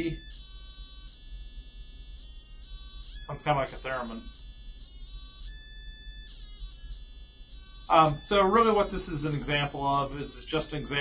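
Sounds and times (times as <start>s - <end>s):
buzzer high tone: 0.0s - 11.0s.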